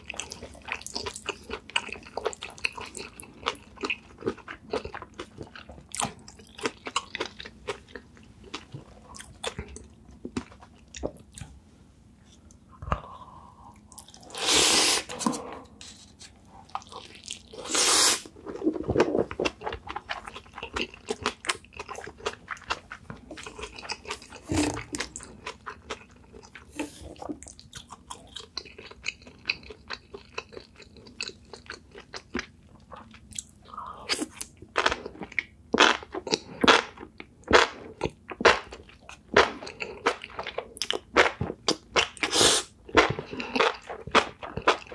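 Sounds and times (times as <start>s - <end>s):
close chewing and wet mouth sounds: 0.0s - 11.6s, 16.5s - 17.6s, 18.3s - 44.9s.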